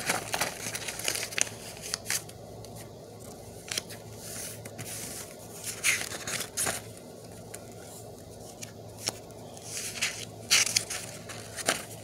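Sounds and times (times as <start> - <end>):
paper pages rustling: 0.0 - 12.0.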